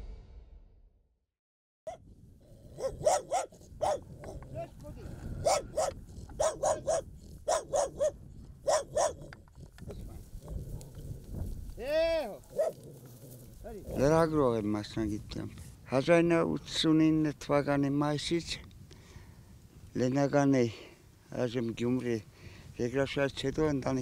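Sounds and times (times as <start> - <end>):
dog barking: 2.7 - 4.4, 5.4 - 9.3, 12.5 - 12.8.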